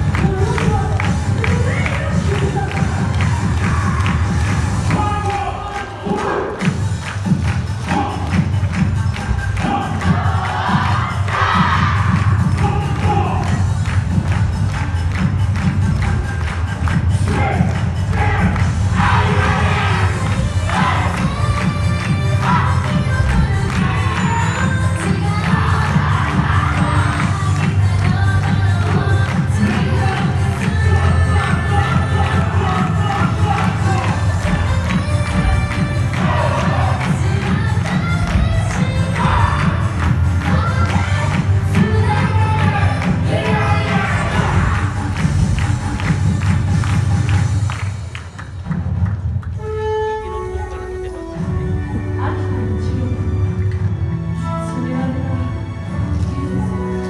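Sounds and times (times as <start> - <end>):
dance music with heavy beat: 0.0 - 49.3
people cheering: 31.4 - 37.4.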